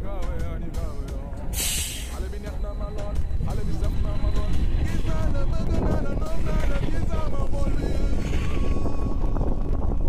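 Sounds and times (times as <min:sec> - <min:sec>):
low traffic rumble: 0:00.0 - 0:10.0
bus air brakes hissing: 0:01.5 - 0:02.4.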